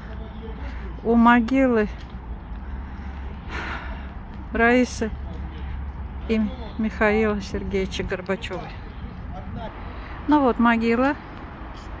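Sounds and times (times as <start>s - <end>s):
wind rumble on microphone: 7.7s - 10.0s.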